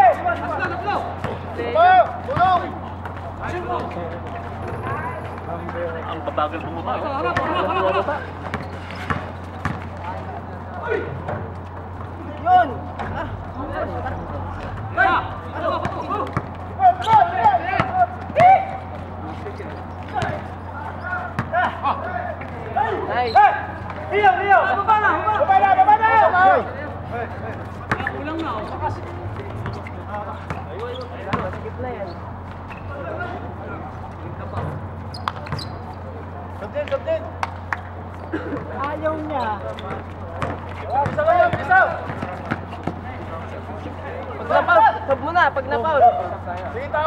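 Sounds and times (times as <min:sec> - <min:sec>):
players' voices: 0:00.0 - 0:47.0
basketball bouncing on hard court: 0:08.5 - 0:10.0, 0:27.8 - 0:28.2, 0:29.4 - 0:31.7, 0:40.4 - 0:43.0
loud shout: 0:16.8 - 0:18.9, 0:21.0 - 0:26.7.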